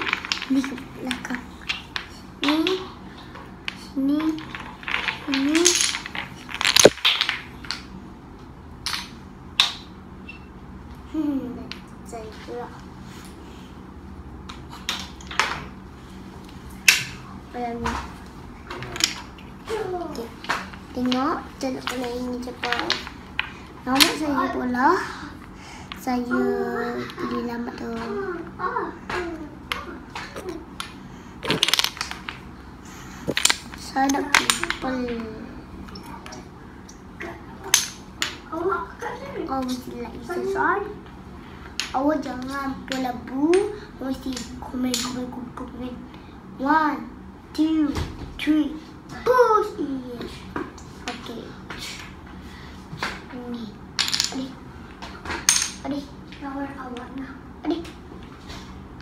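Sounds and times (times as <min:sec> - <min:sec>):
toy dominoes clicking: 0:00.0 - 0:02.9, 0:03.6 - 0:07.8, 0:30.8 - 0:32.4, 0:33.2 - 0:34.9
wooden dominoes clattering: 0:00.0 - 0:07.9, 0:14.5 - 0:15.7, 0:18.7 - 0:24.4, 0:29.7 - 0:32.5, 0:33.1 - 0:35.2, 0:37.6 - 0:38.4, 0:54.0 - 0:54.6, 0:55.3 - 0:55.9.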